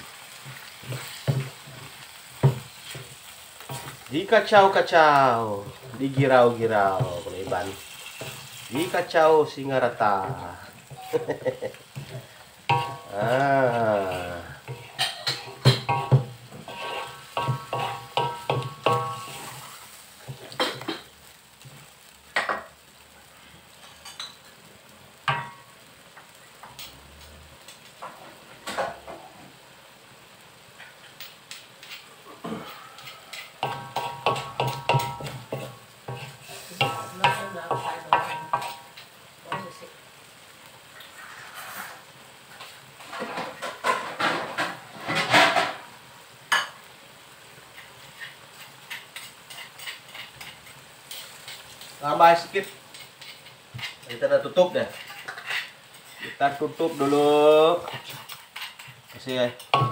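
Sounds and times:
spatula scraping a wok: 0:00.0 - 0:22.6, 0:30.8 - 0:40.2, 0:40.8 - 0:45.9, 0:47.6 - 0:59.9
curry sizzling in pan: 0:00.0 - 0:59.9.

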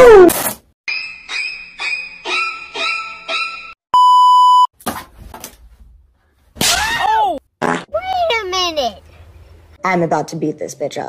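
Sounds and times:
test-tone beep: 0:04.0 - 0:04.7.

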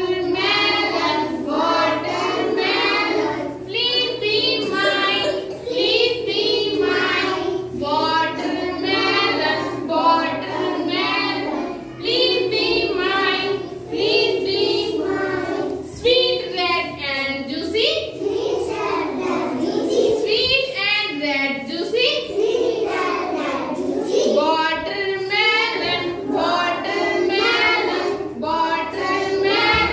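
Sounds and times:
young children singing: 0:00.0 - 0:29.9.

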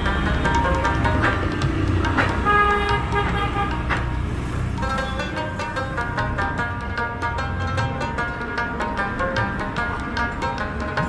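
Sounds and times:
street traffic rumble: 0:00.0 - 0:11.0
vehicle horn: 0:02.4 - 0:03.9.

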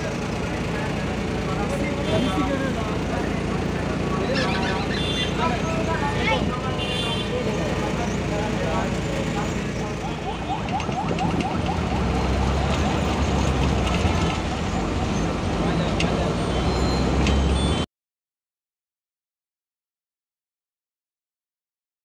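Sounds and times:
voices: 0:00.0 - 0:17.8
vehicle engine rumble: 0:00.0 - 0:17.9.

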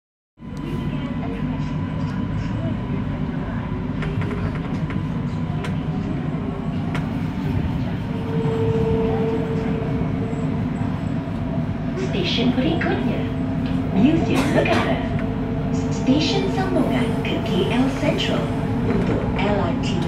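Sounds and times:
train wheels rumbling: 0:03.9 - 0:20.0
high steady tone: 0:08.0 - 0:12.0.

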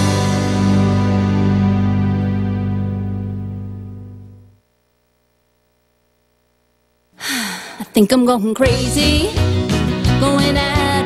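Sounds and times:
loud breathy sigh: 0:07.2 - 0:07.8
person singing country song: 0:07.8 - 0:11.0.

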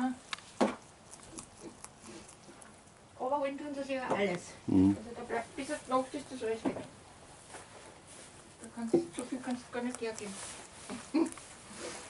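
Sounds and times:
rabbit crunching and rustling straw: 0:00.0 - 0:04.5, 0:05.1 - 0:12.0.

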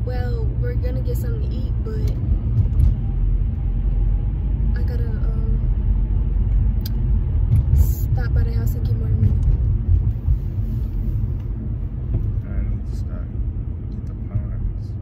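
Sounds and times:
car cabin road and engine rumble: 0:00.0 - 0:15.0.

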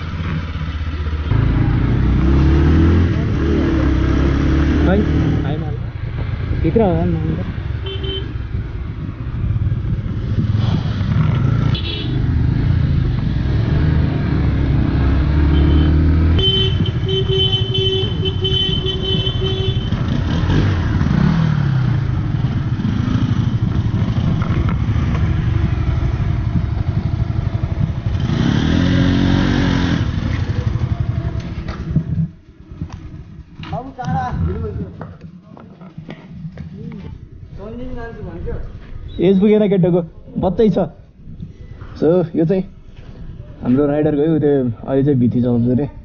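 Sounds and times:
motorcycle engine running: 0:00.0 - 0:37.3.

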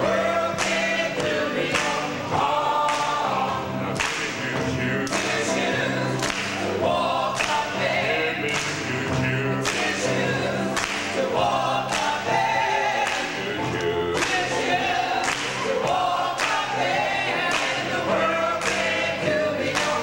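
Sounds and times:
gospel choir singing: 0:00.0 - 0:20.0.

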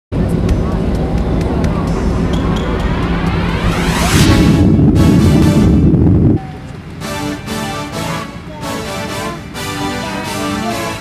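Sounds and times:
airliner engines rumbling: 0:00.2 - 0:11.0.

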